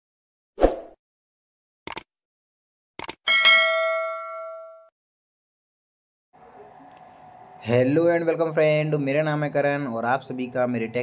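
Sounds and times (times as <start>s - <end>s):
bell ding: 3.3s - 4.9s.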